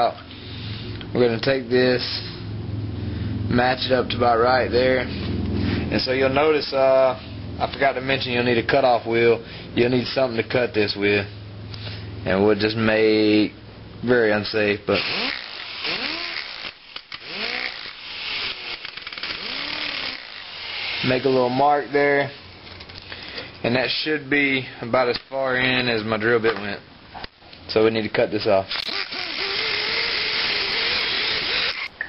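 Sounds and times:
rotary tool grinding metal: 14.9s - 21.8s, 28.7s - 32.0s.

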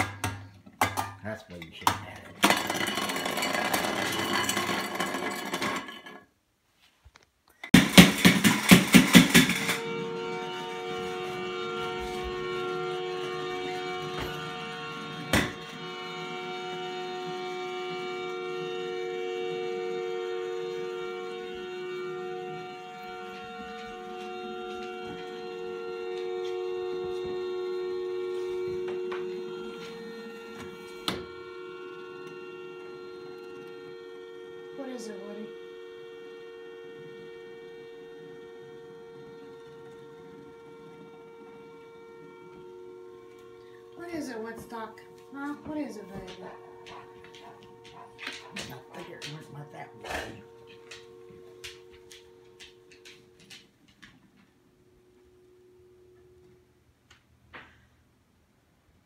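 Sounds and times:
spinning top two-note hum: 9.0s - 57.2s.

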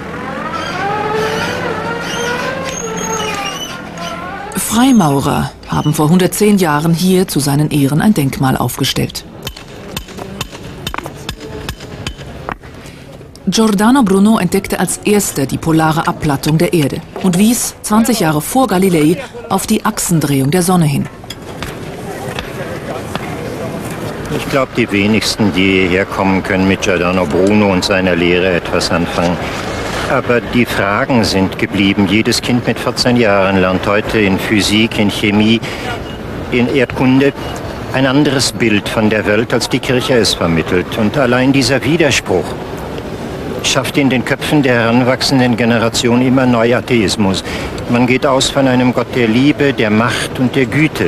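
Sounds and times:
loader engine running: 0.0s - 8.3s, 9.3s - 47.9s
street ambience: 0.0s - 51.0s.

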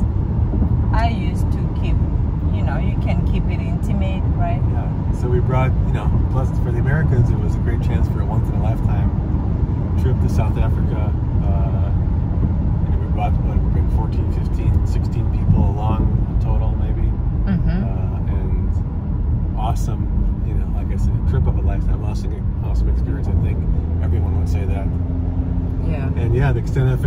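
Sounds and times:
car cabin road rumble: 0.0s - 27.0s.

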